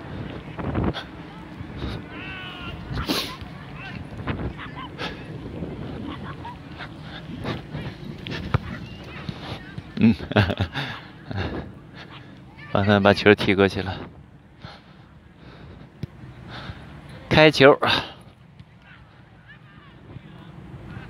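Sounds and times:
players shouting: 0:01.1 - 0:10.1, 0:18.6 - 0:21.0.

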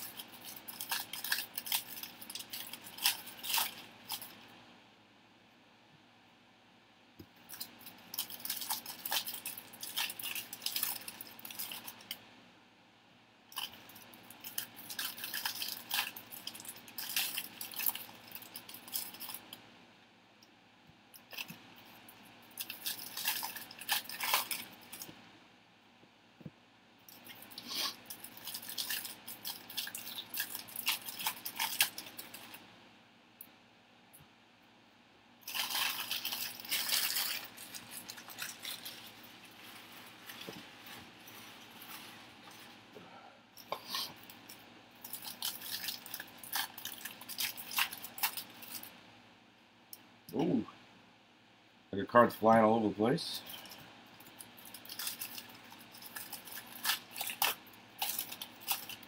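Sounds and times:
plastic wrapping crackling: 0:00.0 - 0:04.5, 0:07.4 - 0:12.2, 0:13.5 - 0:19.6, 0:21.2 - 0:25.1, 0:27.0 - 0:32.6, 0:35.4 - 0:42.9, 0:43.6 - 0:49.0, 0:53.4 - 0:59.0.

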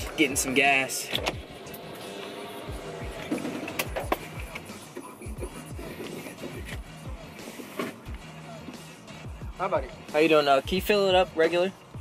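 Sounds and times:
background music with deep bass beat: 0:00.0 - 0:12.0.

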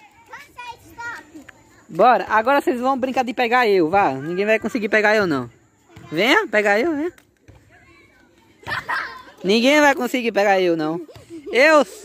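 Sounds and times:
children playing: 0:00.0 - 0:02.6, 0:03.7 - 0:06.6, 0:07.3 - 0:12.0.

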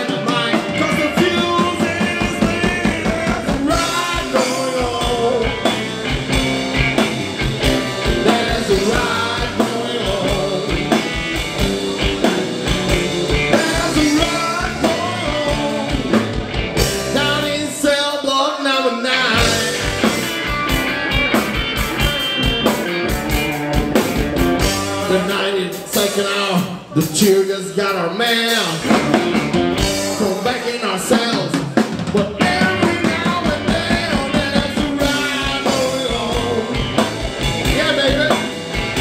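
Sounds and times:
male lead vocal: 0:00.0 - 0:07.0, 0:07.6 - 0:20.2, 0:24.8 - 0:29.2, 0:29.8 - 0:39.0
drum kit: 0:00.0 - 0:18.3, 0:19.3 - 0:39.0
bass guitar: 0:00.0 - 0:39.0
electric guitars: 0:00.0 - 0:39.0.

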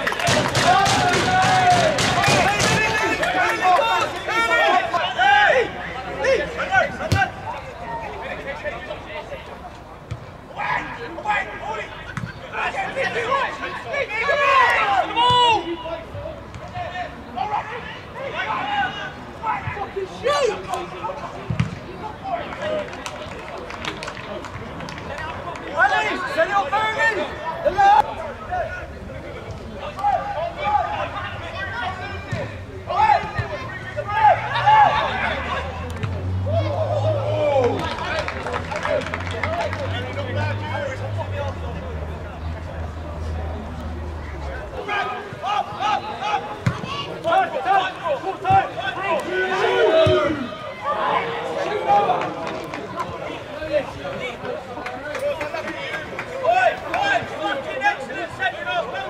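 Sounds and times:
players shouting: 0:00.0 - 0:09.6, 0:10.4 - 0:23.6, 0:24.3 - 0:59.0
crowd chatter: 0:00.0 - 0:59.0.

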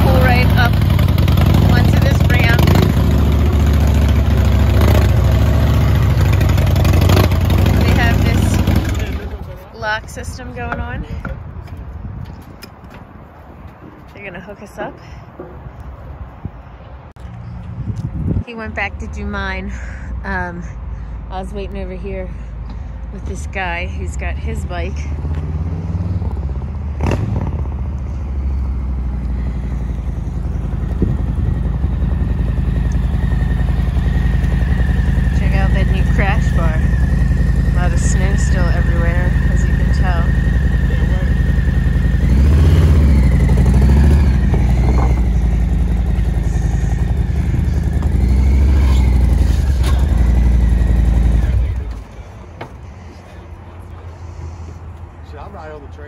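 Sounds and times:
motorcycle throttle bursts: 0:00.0 - 0:09.4, 0:29.2 - 0:52.0
motorcycle engine running: 0:00.0 - 0:11.4, 0:25.0 - 0:53.2.

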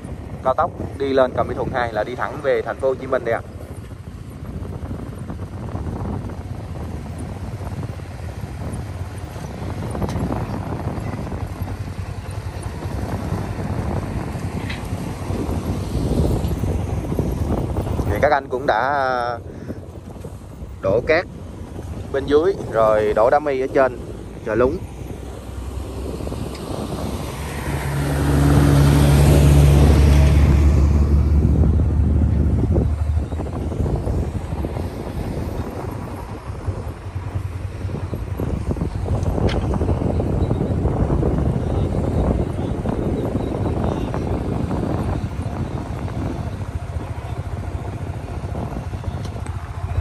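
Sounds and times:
motorcycle engine and road rumble: 0:00.0 - 0:50.0
vehicle engine droning: 0:00.0 - 0:50.0
wind buffeting: 0:00.0 - 0:50.0.

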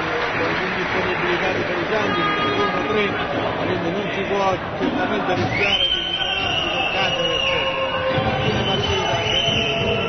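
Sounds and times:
high-pitched whistle tone: 0:05.5 - 0:10.0.

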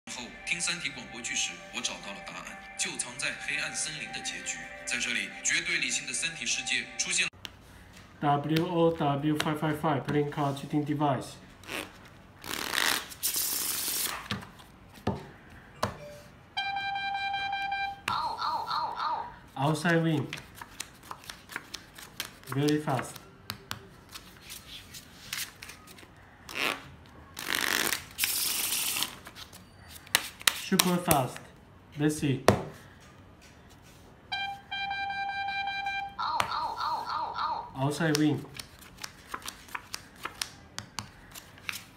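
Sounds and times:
high-pitched tone: 0:00.1 - 0:07.3, 0:15.8 - 0:19.4, 0:34.3 - 0:37.8
playing cards shuffling: 0:11.6 - 0:14.7, 0:19.8 - 0:26.8, 0:27.4 - 0:31.4, 0:38.0 - 0:41.9
steady electronic beep: 0:15.8 - 0:18.0.

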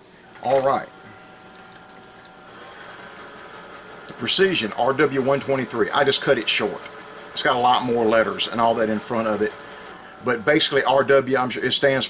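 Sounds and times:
background hum and hiss: 0:00.0 - 0:12.0.

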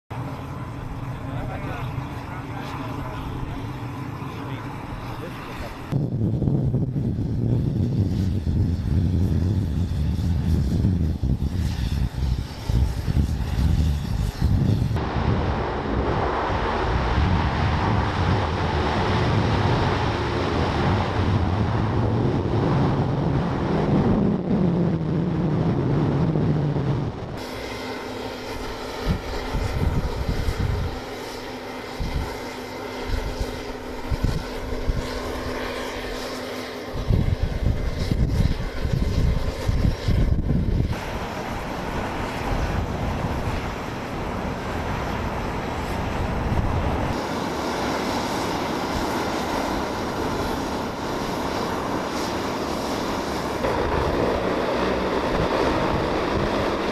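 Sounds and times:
hovercraft turbines rushing: 0:00.1 - 0:56.9
low engine rumble: 0:00.1 - 0:56.9
wind on microphone: 0:04.2 - 0:27.8, 0:28.4 - 0:56.9.

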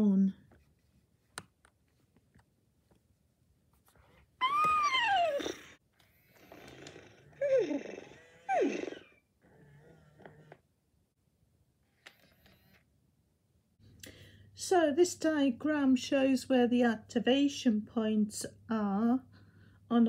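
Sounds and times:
toy pony whinnying through speaker: 0:04.4 - 0:05.8, 0:07.4 - 0:09.2.

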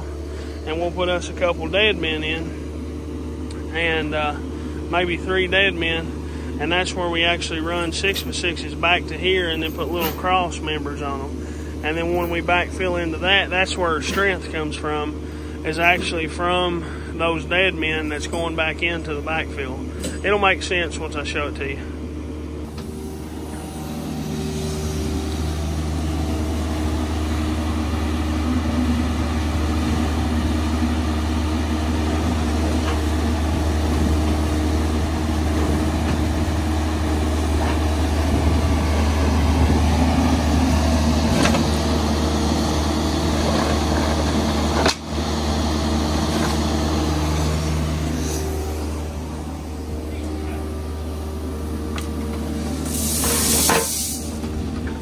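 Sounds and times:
excavator diesel engine droning: 0:00.0 - 0:55.0.

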